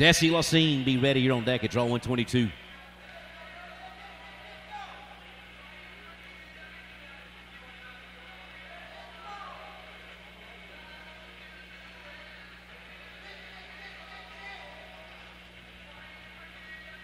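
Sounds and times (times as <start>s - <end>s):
crowd shouting: 0.0s - 16.8s
faint background music: 0.0s - 17.0s
sound system hum: 0.0s - 17.0s.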